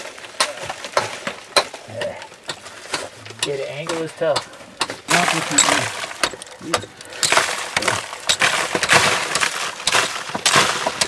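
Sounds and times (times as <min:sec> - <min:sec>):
steel tool striking rock: 0:02.5 - 0:11.0.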